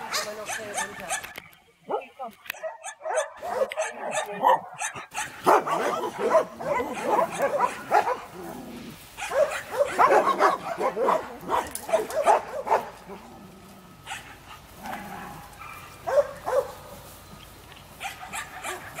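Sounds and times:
dog barking: 0:00.0 - 0:08.4, 0:09.2 - 0:13.2, 0:14.0 - 0:14.4, 0:15.6 - 0:16.8, 0:18.0 - 0:19.0.

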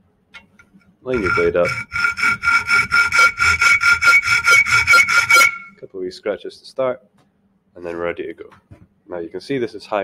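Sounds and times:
hacksaw cutting metal: 0:01.1 - 0:05.8.

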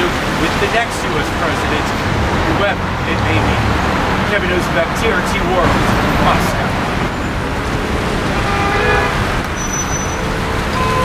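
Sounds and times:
traffic rumble and tyre noise: 0:00.0 - 0:11.0
car horn: 0:08.2 - 0:11.0.

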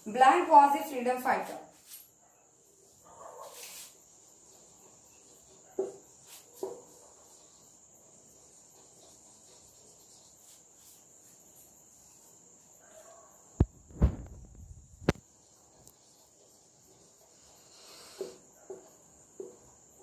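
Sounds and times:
cricket trill: 0:00.0 - 0:20.0.

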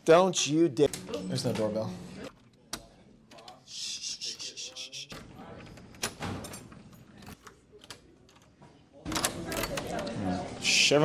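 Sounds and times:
room chatter: 0:00.1 - 0:11.0.

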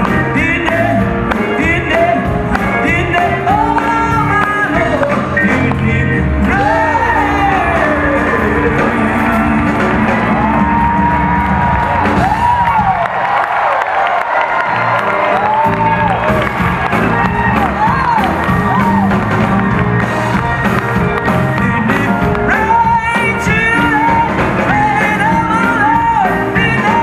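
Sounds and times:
backing band: 0:00.0 - 0:27.0.

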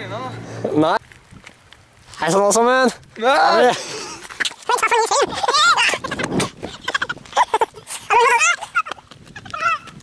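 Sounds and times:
high-pitched whimpering cries: 0:05.1 - 0:09.9.

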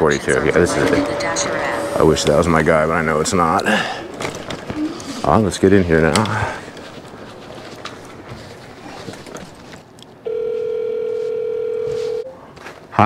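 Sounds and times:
telephone ringback tone: 0:10.2 - 0:12.4.

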